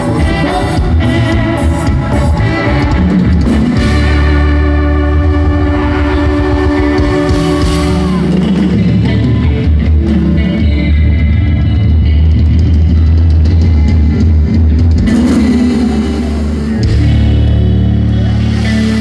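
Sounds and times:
heavy booming bass: 0:00.0 - 0:19.0
live band playing loudly: 0:00.0 - 0:19.0.

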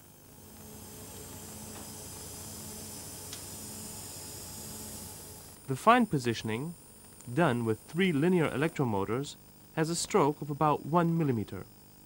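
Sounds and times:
low hum: 0:00.0 - 0:12.0
steady hiss: 0:00.0 - 0:12.0.

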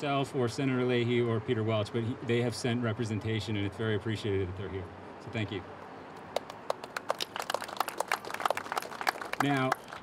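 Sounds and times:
crowd applause: 0:06.4 - 0:10.0.

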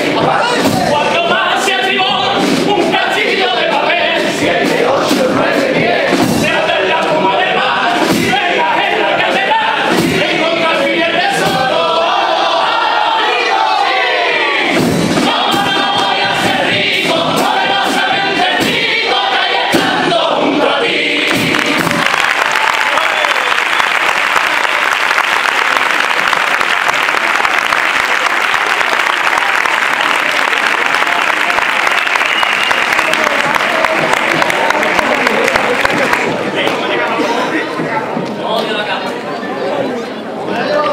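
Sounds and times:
male choir singing in harmony: 0:00.0 - 0:22.1
audience applauding and cheering: 0:21.0 - 0:37.0.

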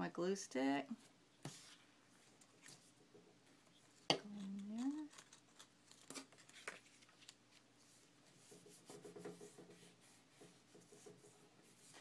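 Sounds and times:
paper rustling: 0:03.9 - 0:08.1
paper being folded: 0:04.3 - 0:08.0.

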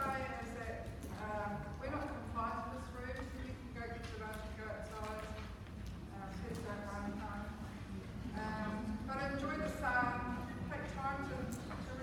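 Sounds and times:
woman speaking: 0:00.0 - 0:05.4.

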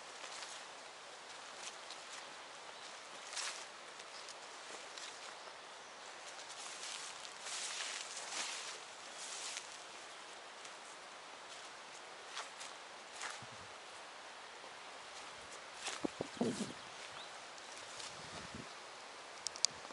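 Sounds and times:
footsteps swishing through grass: 0:00.0 - 0:05.4, 0:06.0 - 0:14.0, 0:15.1 - 0:18.7
leaves and stems rustling: 0:00.0 - 0:19.9.

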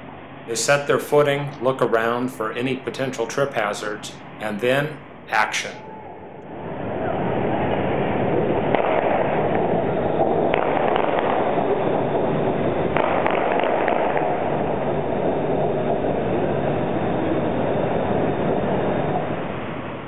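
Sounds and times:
faint squeals: 0:05.6 - 0:07.4.

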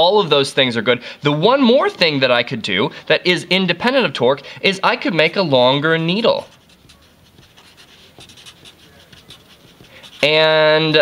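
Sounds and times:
marker scratching on paper: 0:05.0 - 0:11.0.

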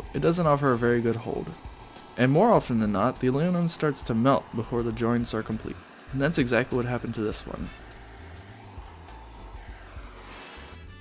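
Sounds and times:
brazing torch hissing: 0:00.0 - 0:11.0.

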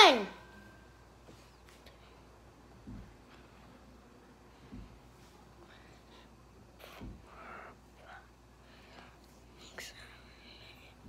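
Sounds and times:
child whispering: 0:09.6 - 0:11.0.

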